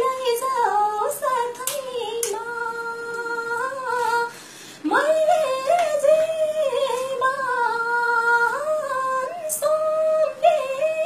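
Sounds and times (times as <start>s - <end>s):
woman singing unaccompanied: 0.0s - 11.0s
person breathing: 3.9s - 4.9s.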